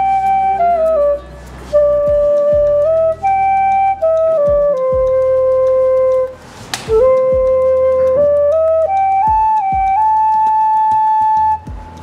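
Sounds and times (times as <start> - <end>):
bamboo flute long note: 0.0 - 12.0
low thud: 6.7 - 7.6, 11.7 - 11.9.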